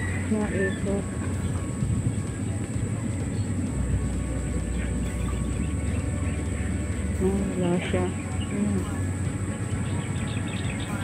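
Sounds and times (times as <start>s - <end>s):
distant harvesting machines rumbling: 0.0s - 11.0s
wind buffeting microphone: 0.0s - 11.0s.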